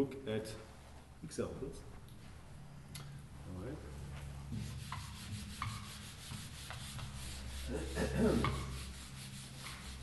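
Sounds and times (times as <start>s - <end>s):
eraser rubbing on whiteboard: 4.5s - 10.0s.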